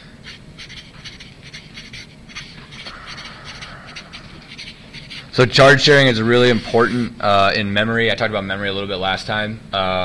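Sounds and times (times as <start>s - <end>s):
felt-tip marker writing on paper: 0.2s - 7.0s.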